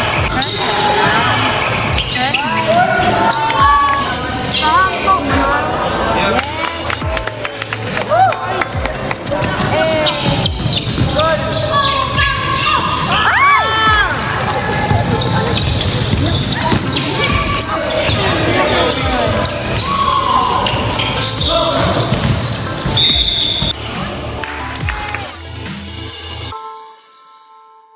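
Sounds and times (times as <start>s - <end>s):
sneakers squeaking on wood: 0.0s - 4.8s, 8.8s - 23.8s
basketballs bouncing on hardwood: 14.8s - 18.4s, 21.4s - 23.8s.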